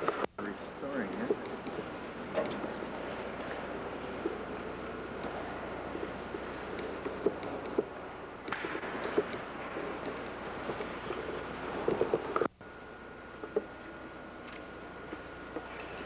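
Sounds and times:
church interior background noise: 0:00.0 - 0:16.0.

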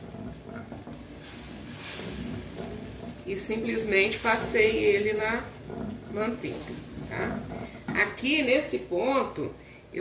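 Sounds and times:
sauce simmering: 0:00.0 - 0:10.0.

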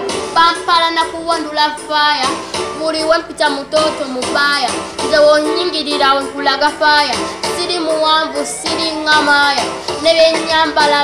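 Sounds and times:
girl singing melodic phrase: 0:00.3 - 0:11.0.

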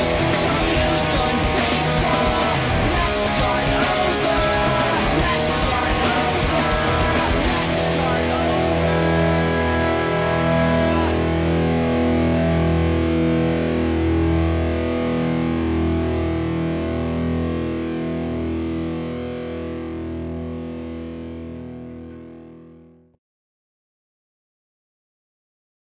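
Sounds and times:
distorted electric guitar chord ringing: 0:00.0 - 0:23.1.

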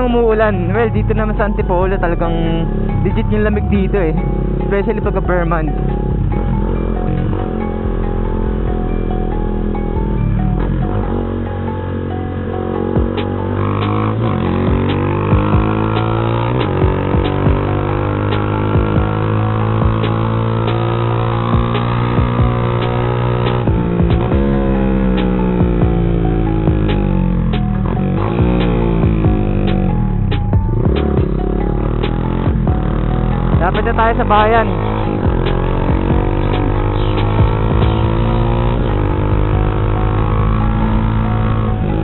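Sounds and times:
motorcycle engine accelerating: 0:00.0 - 0:42.0
music playing: 0:00.0 - 0:42.0.

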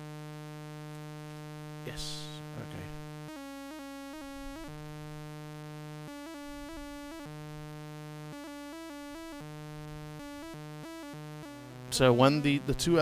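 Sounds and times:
synthesizer tone stepping pitches: 0:03.1 - 0:13.0.

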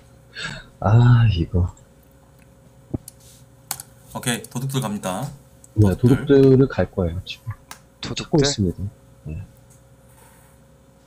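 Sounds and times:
computer keyboard clicks: 0:03.0 - 0:04.6.

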